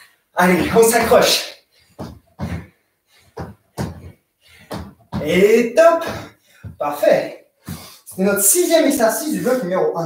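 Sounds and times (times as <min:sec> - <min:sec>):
feet landing on floor: 0:02.0 - 0:05.4, 0:06.0 - 0:06.8.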